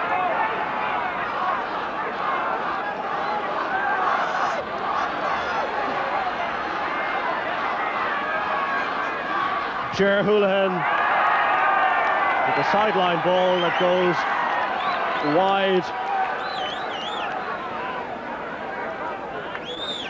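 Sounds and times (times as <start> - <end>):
crowd babble: 0.0 - 20.0.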